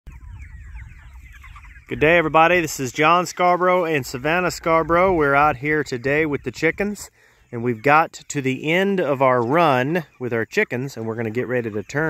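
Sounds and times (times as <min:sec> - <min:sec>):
chickens cheeping and clucking: 0:00.1 - 0:12.0.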